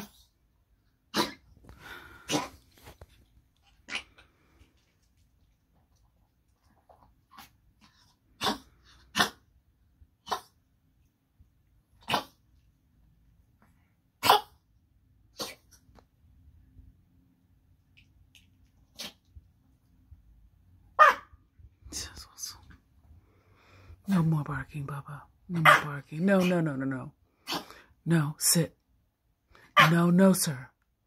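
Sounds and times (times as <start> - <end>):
small dog coughing: 1.1 - 1.6, 2.2 - 2.6, 8.4 - 9.5, 10.2 - 10.5, 12.0 - 12.4, 14.2 - 14.6, 15.3 - 15.8, 27.4 - 27.8.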